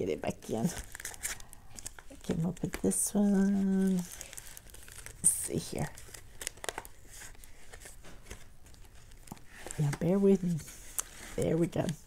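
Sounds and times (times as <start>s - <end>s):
plastic packaging crinkling: 0.3s - 12.0s.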